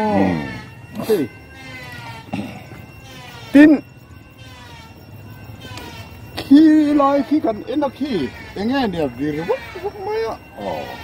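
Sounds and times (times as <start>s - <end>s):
faint background tones: 0.0s - 11.0s.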